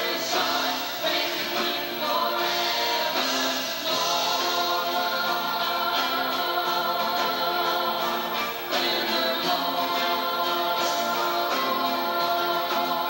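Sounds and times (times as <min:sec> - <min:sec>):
choir singing gospel song: 0:00.0 - 0:13.0.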